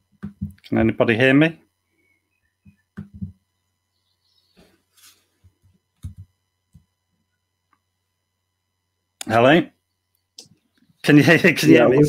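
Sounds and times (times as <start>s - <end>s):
low steady hum: 0.0s - 12.0s
soft rustle: 4.6s - 5.6s.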